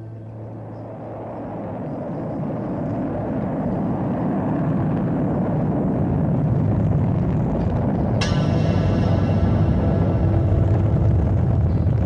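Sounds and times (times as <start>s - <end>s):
deep rocket engine rumble: 0.0s - 12.0s
instrumental music: 8.2s - 12.0s.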